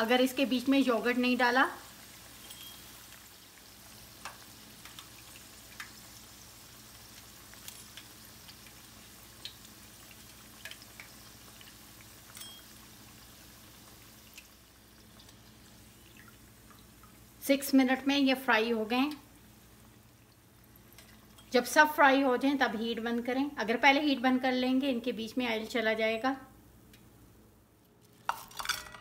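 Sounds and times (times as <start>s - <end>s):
oil sizzling with pops: 0.0s - 24.1s, 25.1s - 29.0s.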